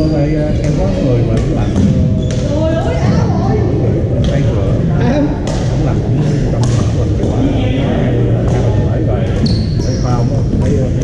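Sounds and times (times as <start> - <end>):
chatter of many voices: 0.0 - 11.0
high squeal: 9.4 - 10.4.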